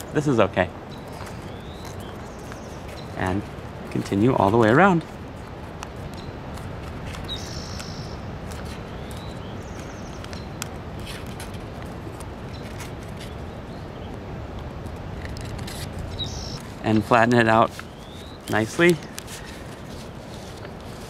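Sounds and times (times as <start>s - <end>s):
steady background hiss: 0.0s - 21.0s
paper rustling and crackling: 1.0s - 13.5s, 15.1s - 21.0s.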